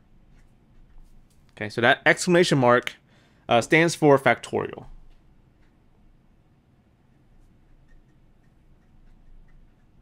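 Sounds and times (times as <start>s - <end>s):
low steady hum: 0.0s - 10.0s
pen nib scratching on paper: 7.1s - 10.0s.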